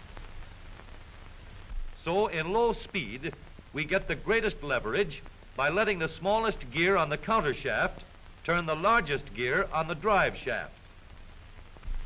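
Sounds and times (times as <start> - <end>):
film soundtrack hiss and hum: 0.0 - 12.0.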